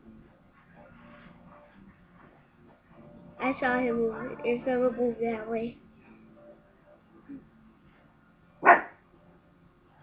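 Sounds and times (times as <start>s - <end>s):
dog barking: 8.6s - 9.0s.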